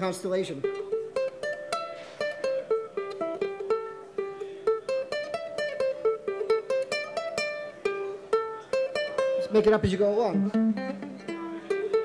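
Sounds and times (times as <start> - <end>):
ukulele picking single notes: 0.4 - 12.0.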